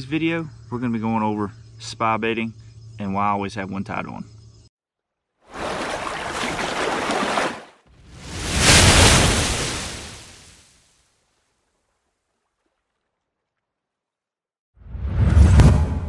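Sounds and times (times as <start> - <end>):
splashing rushing water: 5.5 - 10.8
whoosh with deep rumble: 14.8 - 16.0.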